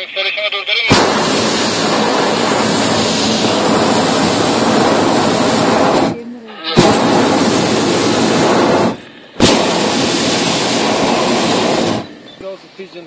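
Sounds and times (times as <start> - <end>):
propane burner blasts: 0.0 - 13.0
person speaking: 6.1 - 6.8, 12.4 - 13.0.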